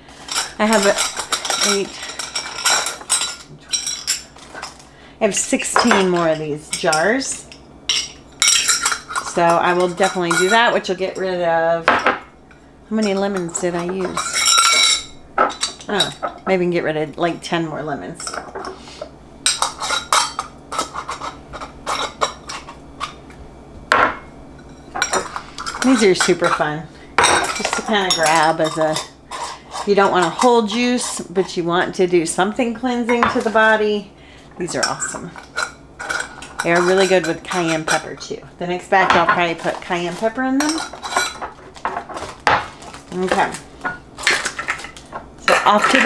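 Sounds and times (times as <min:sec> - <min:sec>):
glass jars clinking: 0:00.3 - 0:04.8, 0:07.9 - 0:11.3, 0:13.0 - 0:16.4, 0:24.8 - 0:30.6.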